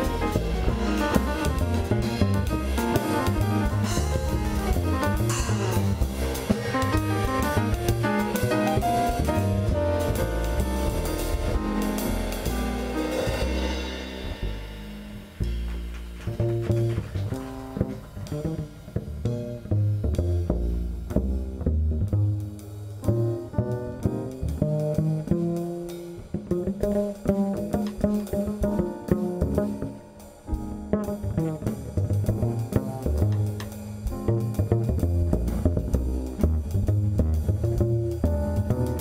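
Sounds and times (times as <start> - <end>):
drums with cymbal shimmer: 0.0 - 21.1, 24.0 - 39.0
grand piano: 0.0 - 39.0
plucked upright bass: 0.0 - 39.0.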